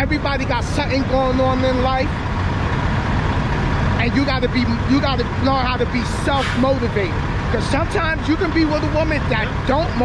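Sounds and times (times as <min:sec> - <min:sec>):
diesel trucks idling: 0:00.0 - 0:10.0.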